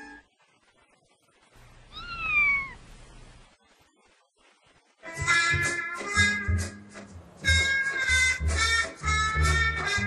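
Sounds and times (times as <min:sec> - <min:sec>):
cat meowing: 0:01.9 - 0:02.8.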